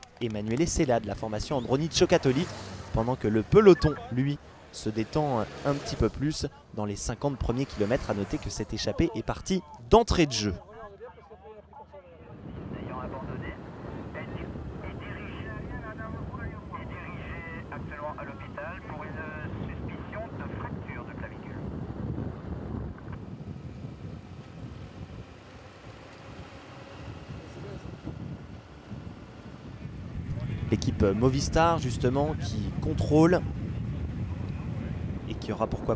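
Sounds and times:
motor vehicle running: 0:00.0 - 0:10.7, 0:12.2 - 0:35.9
voices talking: 0:00.0 - 0:21.8, 0:26.0 - 0:35.9
wind rushing over microphone: 0:12.3 - 0:35.9.

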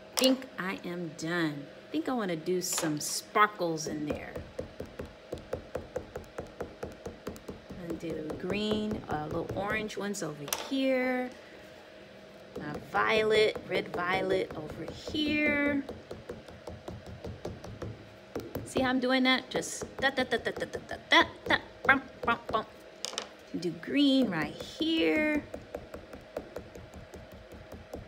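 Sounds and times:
woman speaking: 0:00.2 - 0:04.4, 0:07.8 - 0:11.3, 0:12.6 - 0:15.9, 0:18.7 - 0:22.7, 0:23.5 - 0:25.5
crayon tapping on paper: 0:04.1 - 0:09.9, 0:12.6 - 0:18.9, 0:24.3 - 0:28.0.

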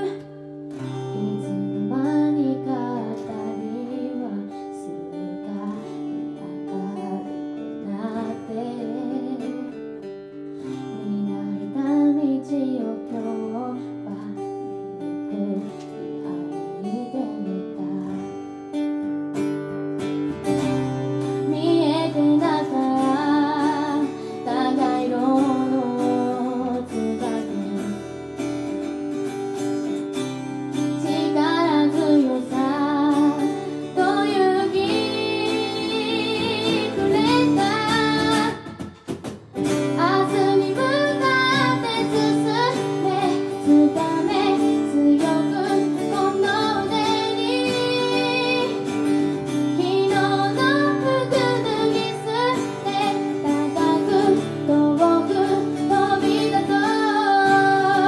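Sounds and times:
woman singing with vibrato: 0:00.0 - 0:09.8, 0:10.8 - 0:14.5, 0:15.3 - 0:18.3, 0:21.4 - 0:28.2, 0:31.0 - 0:39.0, 0:39.6 - 0:58.0
acoustic guitars playing chords: 0:00.0 - 0:58.0.

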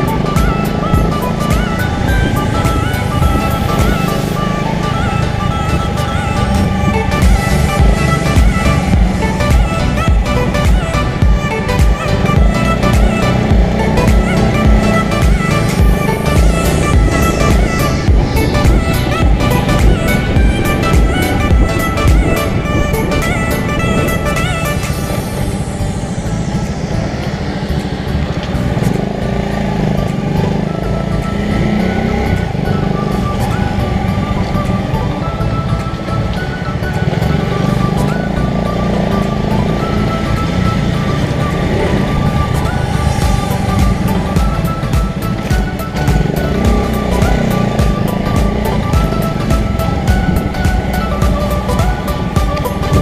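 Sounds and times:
background music: 0:00.0 - 0:53.0
motorcycle engine running: 0:00.0 - 0:53.0.

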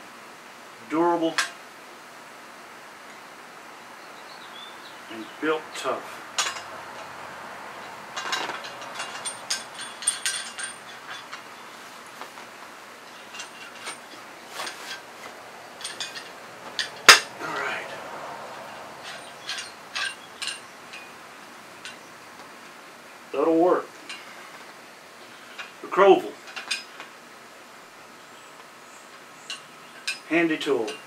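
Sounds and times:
metal shovel parts clicking: 0:07.8 - 0:11.6, 0:13.1 - 0:17.7, 0:18.5 - 0:21.2
sharp loud metal click: 0:15.8 - 0:17.4.

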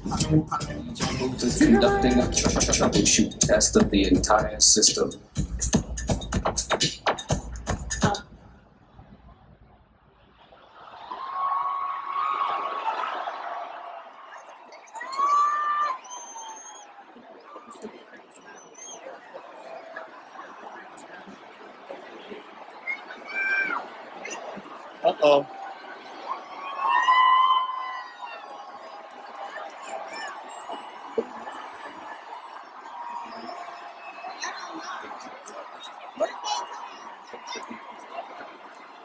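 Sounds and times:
concert crowd noise: 0:00.0 - 0:39.0
high-pitched held vocal note: 0:01.1 - 0:02.6
whistles: 0:14.7 - 0:17.0
shrill whistle: 0:16.0 - 0:16.9
loud held whoop: 0:26.2 - 0:31.7.

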